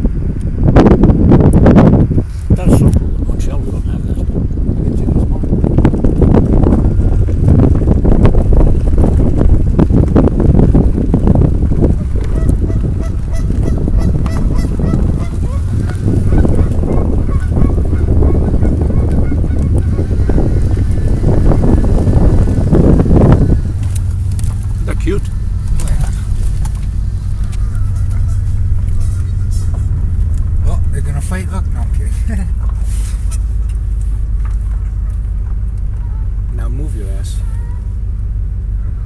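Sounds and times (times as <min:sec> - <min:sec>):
steady low rumble: 0:00.0 - 0:39.0
geese honking: 0:12.2 - 0:21.4, 0:25.4 - 0:30.0.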